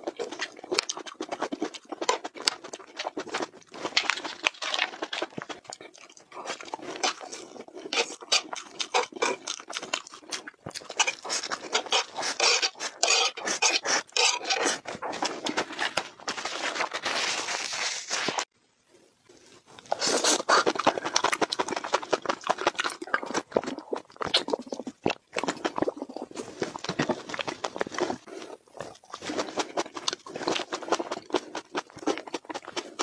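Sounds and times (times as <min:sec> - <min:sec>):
chewing and slurping noodles: 0:00.0 - 0:17.8, 0:19.3 - 0:33.0.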